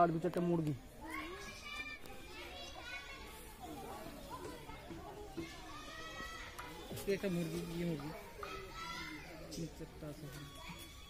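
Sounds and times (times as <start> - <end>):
distant children calling and chattering: 0.0 - 11.0.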